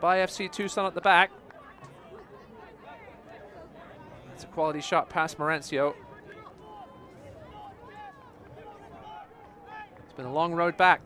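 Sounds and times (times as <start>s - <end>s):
crowd cheering and shouting: 0.3s - 10.8s.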